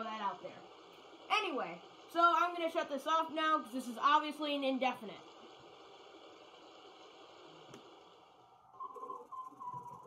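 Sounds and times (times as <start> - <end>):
running water hiss: 0.0 - 8.5.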